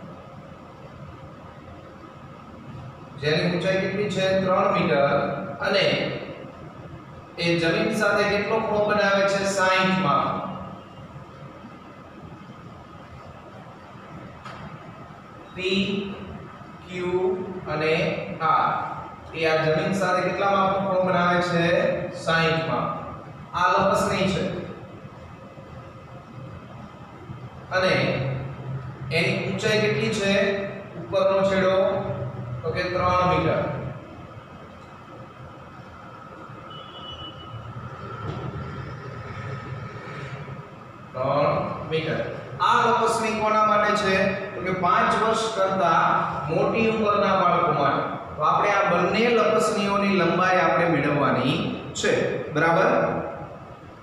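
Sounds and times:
low room rumble: 0:00.0 - 0:54.0.

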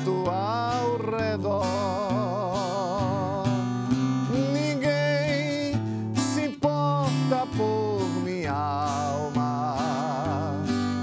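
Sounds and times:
man singing a hymn: 0:00.0 - 0:11.0
strummed acoustic guitar: 0:00.0 - 0:11.0.

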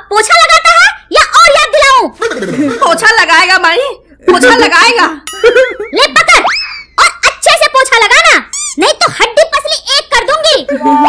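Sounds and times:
steady ringing tones: 0:04.3 - 0:06.0.

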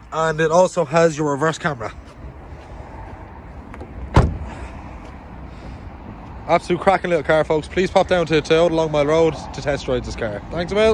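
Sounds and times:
car door shutting: 0:03.7 - 0:04.7.

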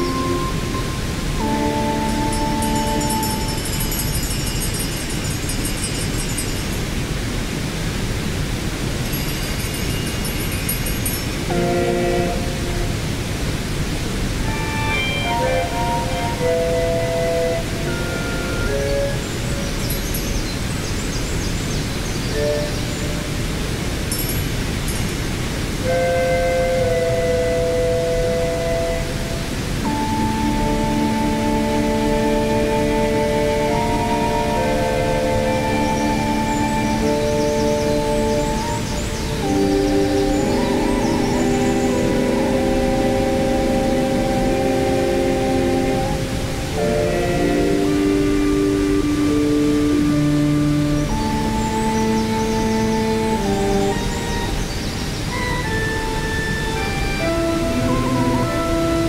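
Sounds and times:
electric melodica chords and notes: 0:00.0 - 0:04.2, 0:11.4 - 0:13.0, 0:14.4 - 0:19.2, 0:29.8 - 0:54.6, 0:55.3 - 0:59.0
waterfall rushing: 0:00.0 - 0:59.0.

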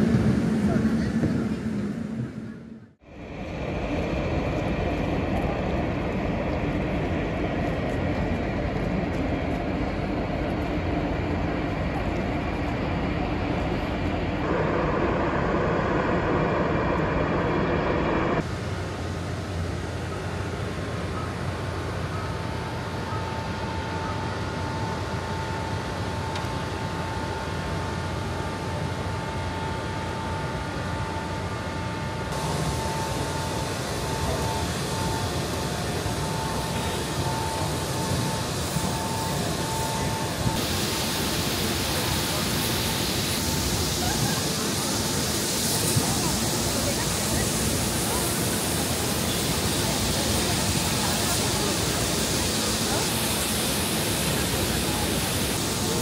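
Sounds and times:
ship machinery drone: 0:00.0 - 0:56.0.

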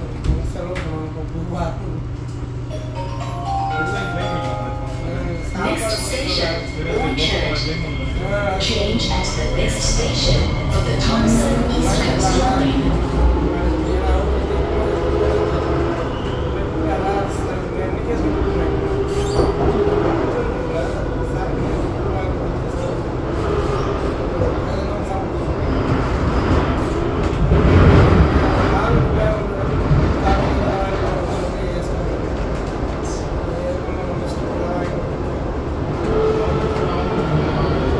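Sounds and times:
metro train rumble in tunnel: 0:00.0 - 0:37.9.

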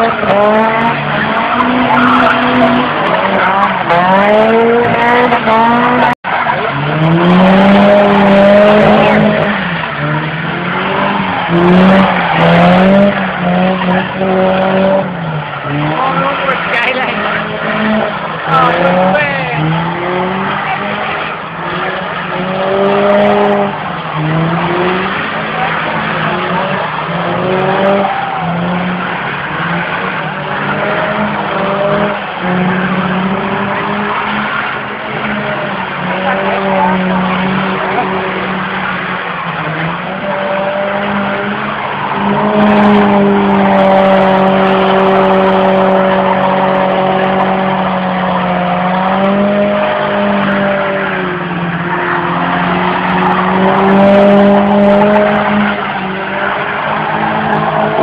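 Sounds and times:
car engines revving: 0:00.0 - 0:58.0.

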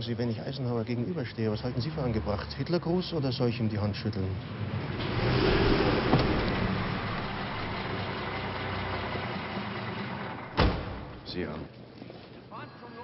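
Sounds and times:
car engine running: 0:04.8 - 0:10.6
sharp thump: 0:05.0 - 0:08.0, 0:10.6 - 0:11.2.

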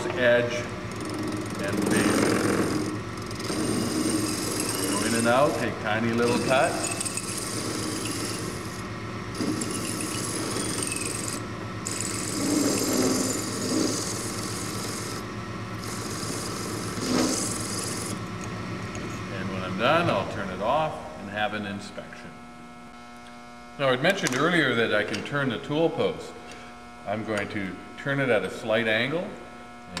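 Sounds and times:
lathe motor hum: 0:00.0 - 0:20.3
tool scraping metal: 0:00.9 - 0:08.8, 0:09.4 - 0:18.2.

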